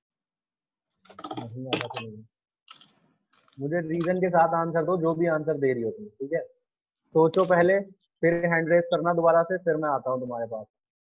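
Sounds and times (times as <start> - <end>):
voice over video call: 1.1 - 2.9, 3.5 - 10.8
keyboard typing clicks: 1.1 - 4.2.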